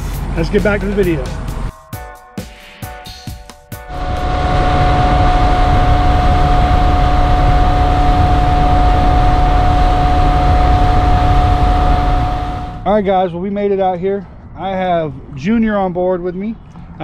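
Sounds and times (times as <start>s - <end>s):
outboard motor whining: 3.9s - 12.8s
rush of wind and water: 3.9s - 12.8s.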